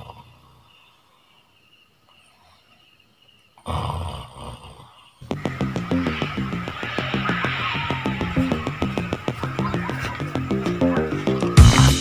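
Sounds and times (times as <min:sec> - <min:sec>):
man snoring: 0:00.0 - 0:00.6, 0:03.6 - 0:12.0.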